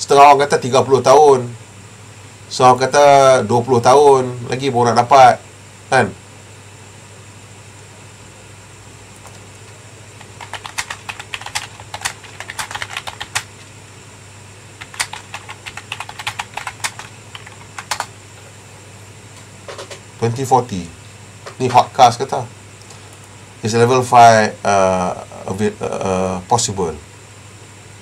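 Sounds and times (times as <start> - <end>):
faint steady hum: 0.0 - 28.0
keyboard typing: 9.2 - 9.6, 10.2 - 13.5, 14.8 - 18.1.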